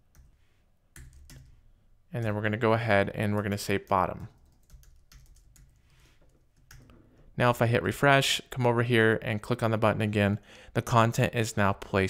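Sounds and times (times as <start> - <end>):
faint keyboard typing: 0.1 - 1.6, 3.4 - 7.3.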